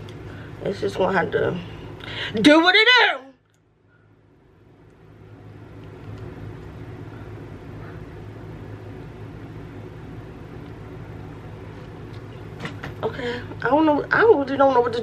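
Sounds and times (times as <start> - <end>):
low hum: 3.4 - 15.0.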